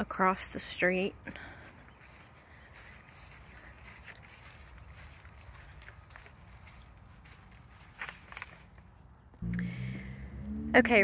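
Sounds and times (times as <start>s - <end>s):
footsteps on dry grass: 1.0s - 9.0s.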